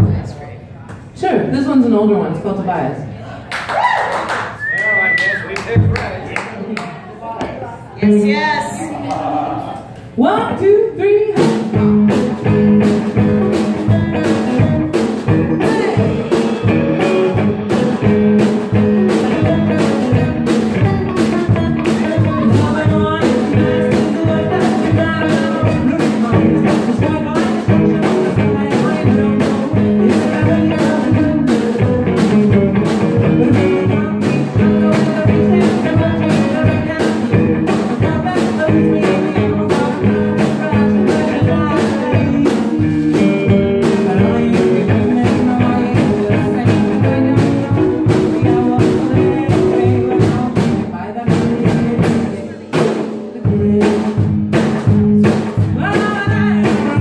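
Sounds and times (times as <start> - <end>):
woman singing: 10.3 - 17.9, 19.1 - 57.0
strummed guitar: 11.4 - 57.0.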